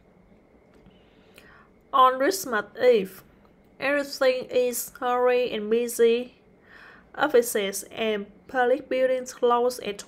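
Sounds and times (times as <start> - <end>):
woman breathing softly: 0.8 - 1.8, 6.5 - 7.2
woman speaking: 1.9 - 6.4, 7.1 - 10.0.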